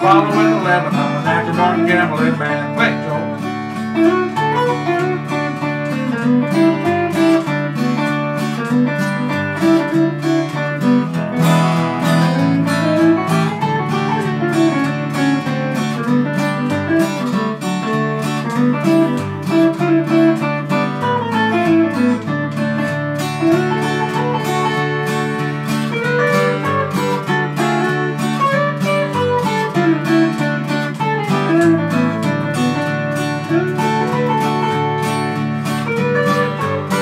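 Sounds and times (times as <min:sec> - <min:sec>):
acoustic guitar strumming: 0:00.0 - 0:37.0
guitar picking lead melody: 0:00.0 - 0:37.0.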